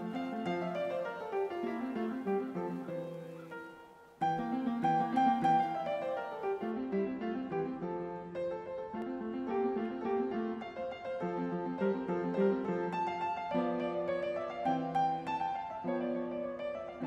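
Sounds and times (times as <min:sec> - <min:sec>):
acoustic guitar and piano music: 0:00.0 - 0:17.0.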